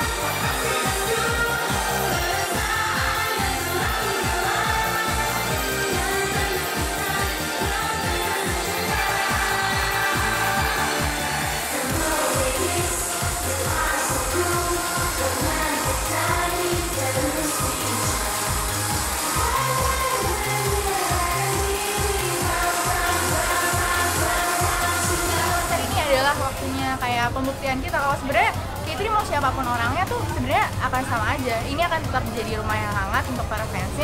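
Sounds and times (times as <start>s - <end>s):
woman singing: 0.0s - 28.0s
pop music with dance beat: 0.0s - 34.0s.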